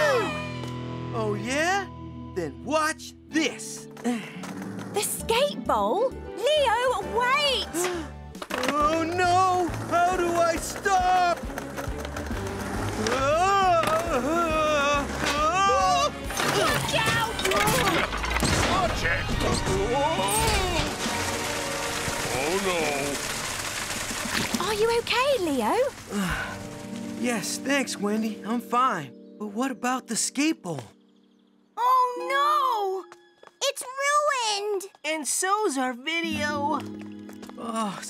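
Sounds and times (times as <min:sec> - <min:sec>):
lively cartoon music: 0:00.0 - 0:23.0, 0:24.6 - 0:34.6
crash with clatter and splatter: 0:16.3 - 0:27.3.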